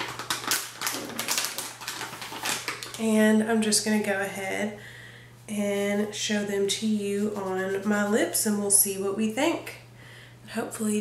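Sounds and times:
steady low hum: 0:02.9 - 0:11.0.

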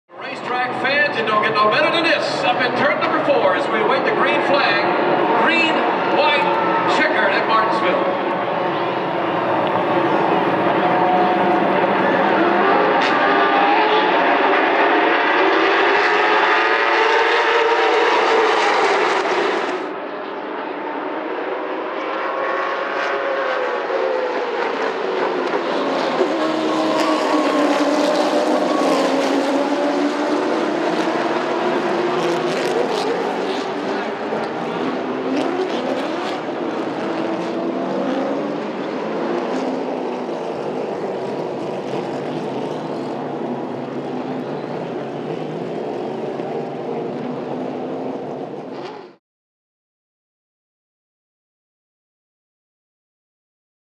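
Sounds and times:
race car engines at full throttle: 0:00.1 - 0:49.2.

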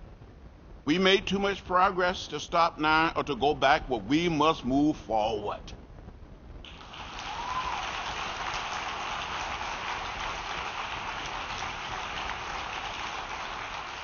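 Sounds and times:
audience applause: 0:06.7 - 0:14.0.

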